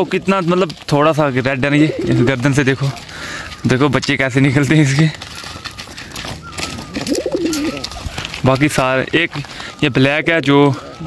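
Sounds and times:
pigeon cooing: 1.7 - 2.4, 5.2 - 8.4.

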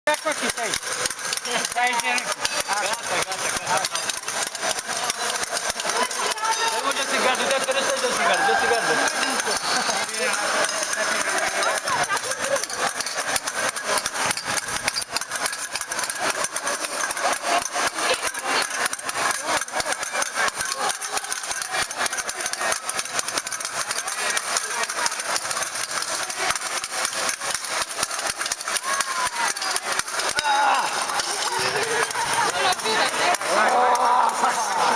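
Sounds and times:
fencing blades clashing: 0.1 - 34.9
voices in background: 0.1 - 34.9.

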